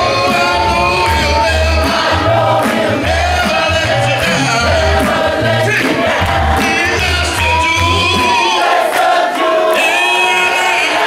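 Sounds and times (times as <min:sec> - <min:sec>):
male voices singing gospel: 0:00.0 - 0:11.0.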